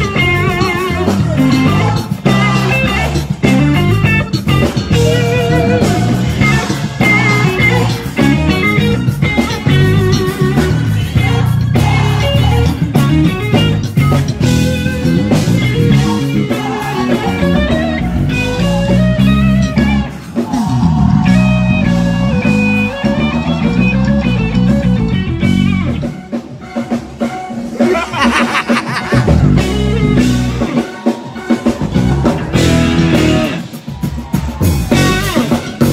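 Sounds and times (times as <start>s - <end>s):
electric guitar lines: 0.0s - 28.0s
drum kit: 0.0s - 35.9s
live gospel band playing: 0.0s - 35.9s.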